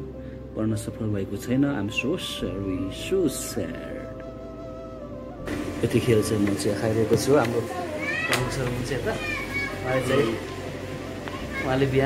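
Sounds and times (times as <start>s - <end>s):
people talking: 0.6s - 4.2s, 5.8s - 12.0s.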